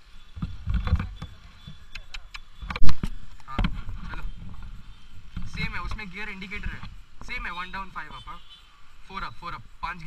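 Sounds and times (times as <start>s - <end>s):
sharp clicks: 0.9s - 3.8s.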